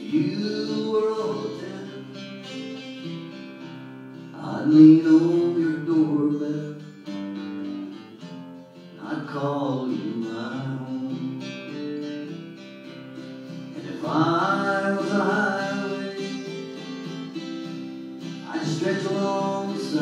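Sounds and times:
man singing: 0.0 - 2.7, 4.2 - 7.2, 8.9 - 11.8, 13.5 - 17.6, 18.2 - 20.0
acoustic guitar strumming: 0.0 - 20.0.

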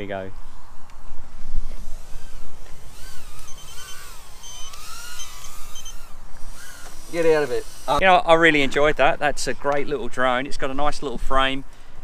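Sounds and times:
quadcopter whining: 1.6 - 8.0.

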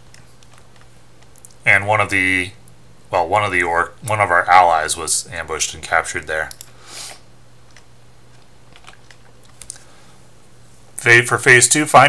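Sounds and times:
low steady hum: 0.0 - 12.0
faint computer clicks: 6.4 - 6.8.

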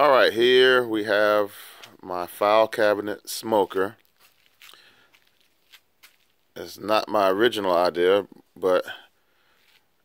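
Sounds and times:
soft rustle: 3.1 - 6.6, 9.2 - 10.0.

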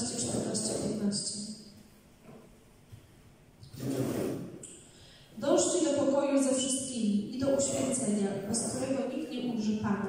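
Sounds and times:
person speaking: 0.0 - 1.4, 5.4 - 10.0.

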